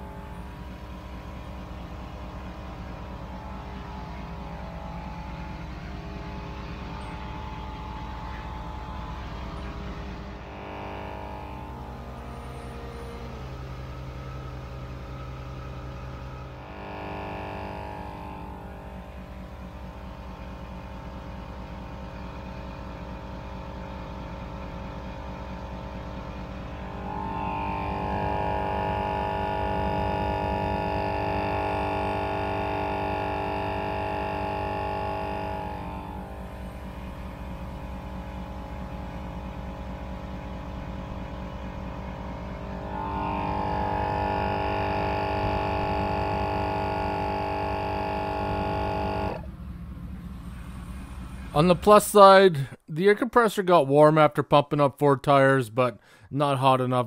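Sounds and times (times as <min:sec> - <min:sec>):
air compressor humming: 0:00.0 - 0:51.8.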